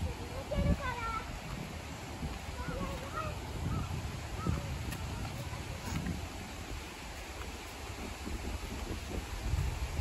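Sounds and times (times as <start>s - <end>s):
footsteps on wooden planks: 0.4s - 10.0s.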